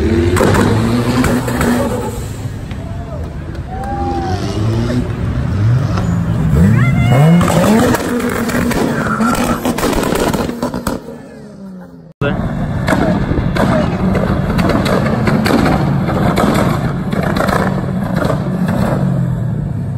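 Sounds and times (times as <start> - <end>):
car engine revving: 0.0 - 19.9
crowd chatter: 1.1 - 8.3.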